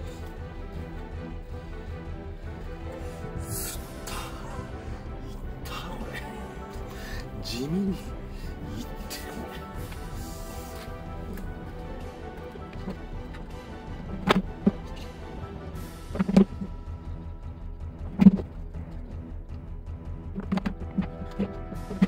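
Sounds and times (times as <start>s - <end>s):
background music with sustained tones: 0.0s - 22.0s.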